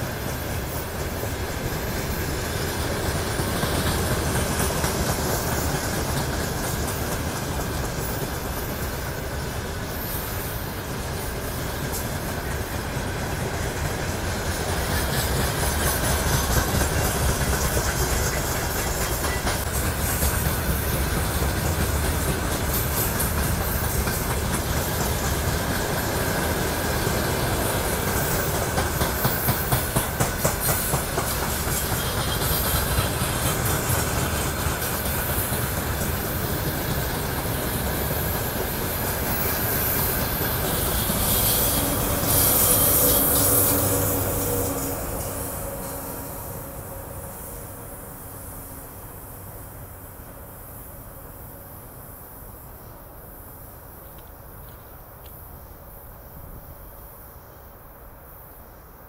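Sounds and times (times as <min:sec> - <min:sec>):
rhythmic clacks over rail joints: 0:00.0 - 0:57.0
train wheels rumbling on rail: 0:00.0 - 0:59.0.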